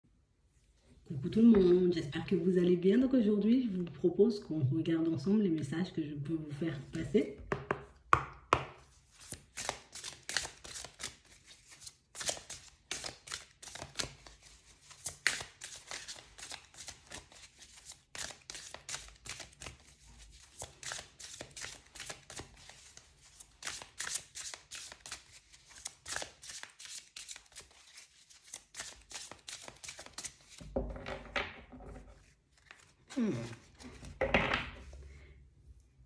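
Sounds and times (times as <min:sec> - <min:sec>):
cards tapped on wooden table: 0:07.5 - 0:08.8
cards sliding and rustling: 0:08.8 - 0:30.6, 0:32.2 - 0:34.2.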